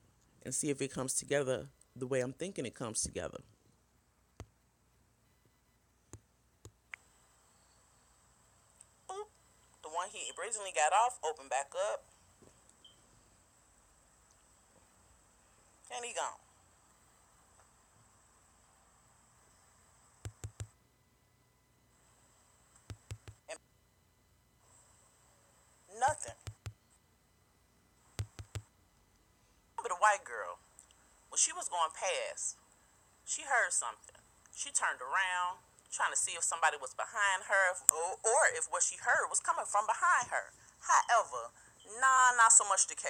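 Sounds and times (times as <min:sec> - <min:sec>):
faint steady hiss: 0:00.0 - 0:43.0
finger tapping touchscreen: 0:20.2 - 0:20.7, 0:22.8 - 0:23.4, 0:26.3 - 0:26.8, 0:28.2 - 0:28.6.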